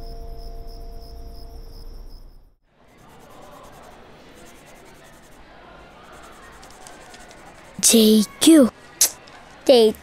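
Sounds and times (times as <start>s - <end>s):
cricket chirping: 0.0s - 2.6s.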